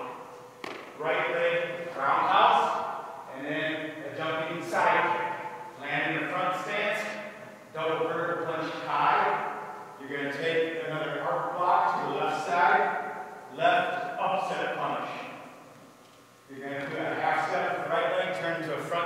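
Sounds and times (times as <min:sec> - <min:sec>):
man talking: 0:01.0 - 0:15.4, 0:16.5 - 0:19.0.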